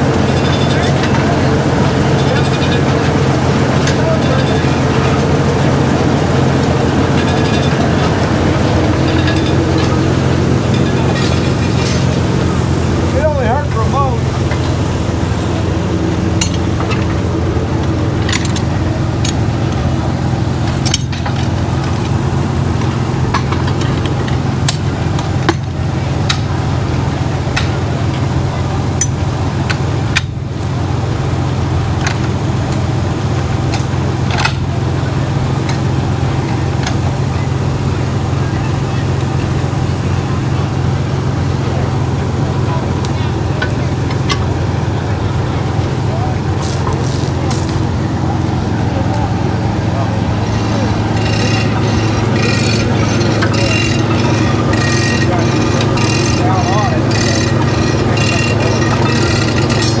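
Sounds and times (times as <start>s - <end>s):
engine droning: 0.0s - 60.0s.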